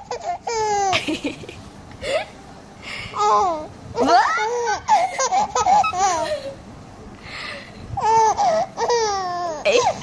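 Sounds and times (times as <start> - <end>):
baby laughing: 0.0 - 1.4, 3.2 - 6.6, 8.0 - 10.0.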